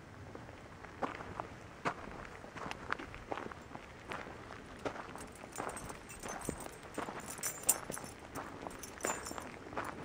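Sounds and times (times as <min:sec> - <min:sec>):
footsteps on gravelly dirt: 0:00.8 - 0:10.0.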